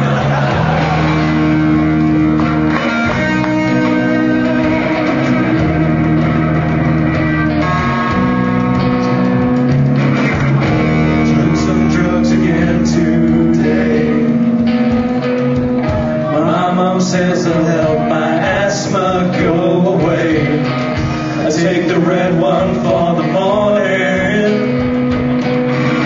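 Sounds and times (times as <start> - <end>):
live rock band playing: 0.0 - 26.0.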